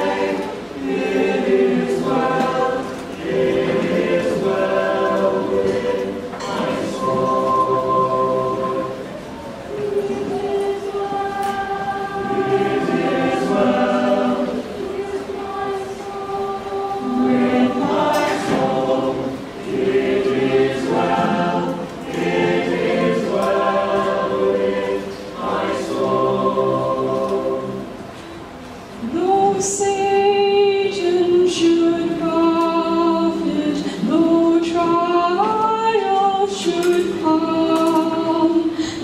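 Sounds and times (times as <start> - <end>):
choir singing a hymn: 0.0 - 39.0.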